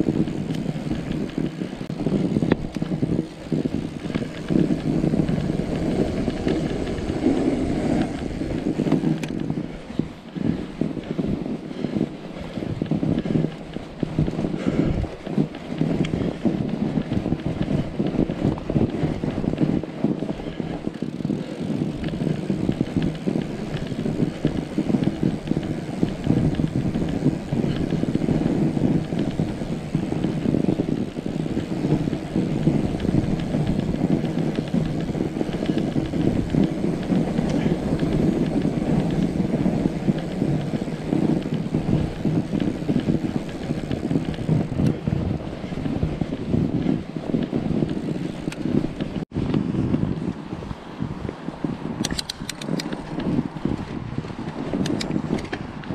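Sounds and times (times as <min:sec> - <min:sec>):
bike rattle: 0:00.0 - 0:50.3, 0:52.0 - 0:55.9
bike tyres rolling on snow: 0:00.0 - 0:55.9.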